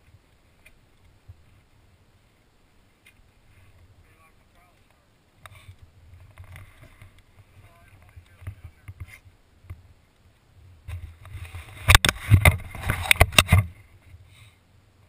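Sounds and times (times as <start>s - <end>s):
faint voices: 7.4s - 9.2s.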